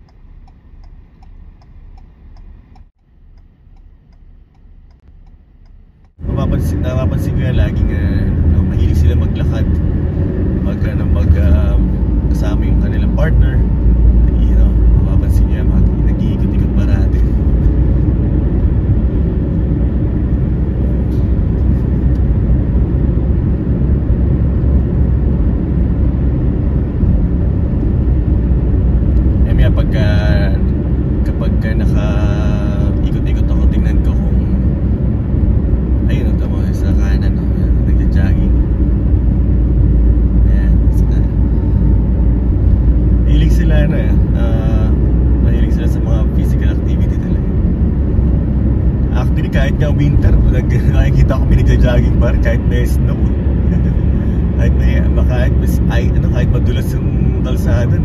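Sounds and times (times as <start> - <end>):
car cabin rumble: 0.0 - 58.0.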